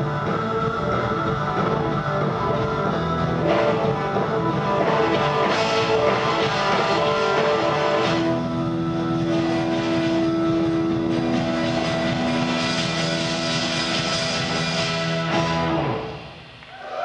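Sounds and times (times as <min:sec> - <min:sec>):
electric guitar playing: 0:00.0 - 0:16.5.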